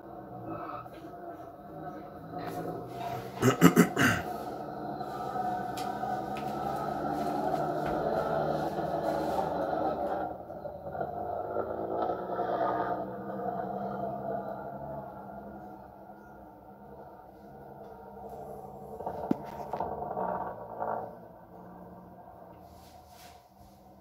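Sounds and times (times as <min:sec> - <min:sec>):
rally car engine running hard: 0:00.0 - 0:24.0.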